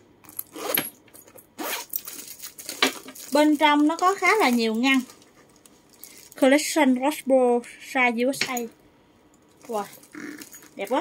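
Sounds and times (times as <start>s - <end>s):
metal zipper pulled open: 0.2s - 2.1s, 9.8s - 11.0s.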